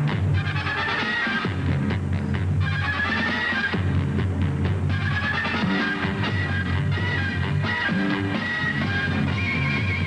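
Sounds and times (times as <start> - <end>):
instrumental background music: 0.0 - 10.0
steady bass line: 0.0 - 10.0.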